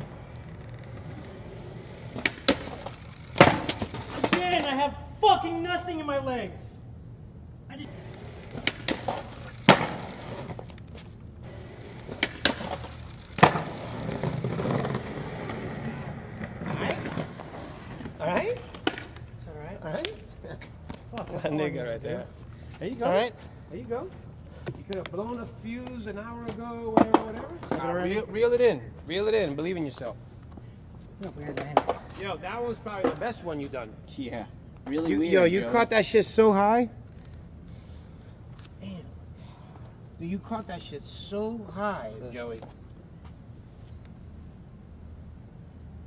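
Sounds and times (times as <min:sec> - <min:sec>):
skateboard clacking on concrete: 0:00.0 - 0:04.8, 0:07.9 - 0:19.3, 0:26.9 - 0:27.9, 0:31.2 - 0:32.2
skateboard wheels rolling: 0:00.0 - 0:06.0, 0:07.8 - 0:22.3, 0:24.7 - 0:37.9.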